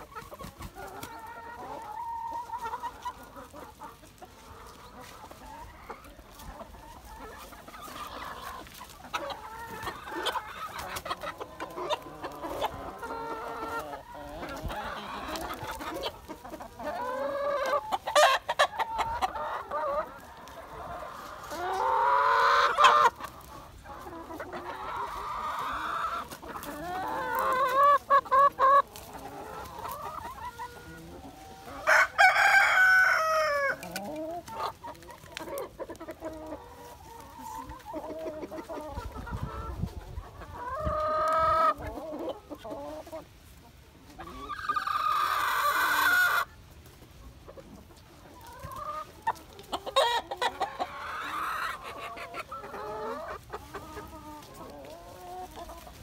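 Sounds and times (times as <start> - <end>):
hens clucking: 0.0 - 56.0
roosters crowing: 24.3 - 34.0.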